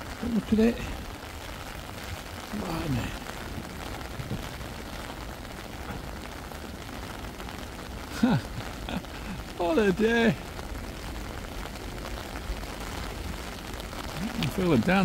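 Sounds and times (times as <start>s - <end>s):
steady rain: 0.0s - 15.0s.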